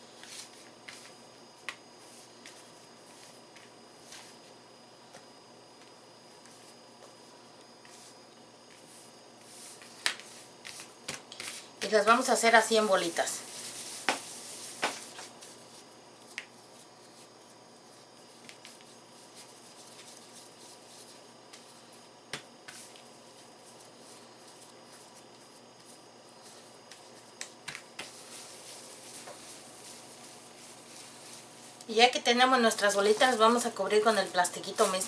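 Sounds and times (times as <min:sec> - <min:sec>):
low room hiss: 0:00.0 - 0:35.0.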